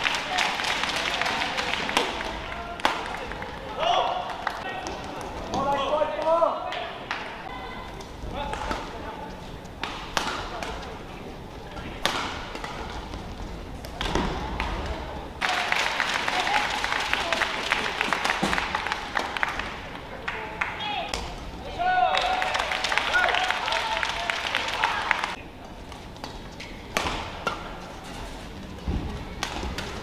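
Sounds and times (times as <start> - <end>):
crowd applauding: 0.0 - 4.6, 15.4 - 20.9, 21.9 - 25.4
racket hitting shuttlecock: 9.8 - 10.8, 11.8 - 13.2, 26.2 - 27.8, 29.4 - 30.0.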